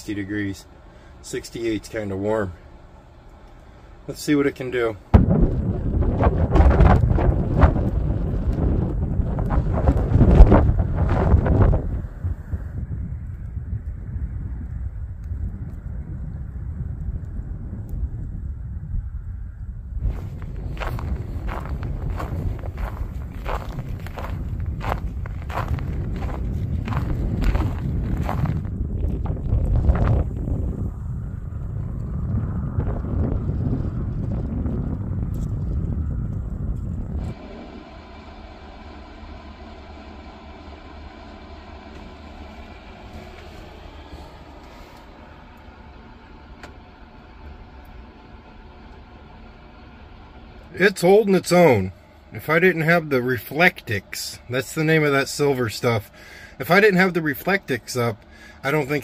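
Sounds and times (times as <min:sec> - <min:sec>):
space heater hum: 0:00.0 - 0:59.0
wind buffeting the microphone: 0:03.9 - 0:37.7
footsteps on snow: 0:20.0 - 0:28.8, 0:42.5 - 0:45.2.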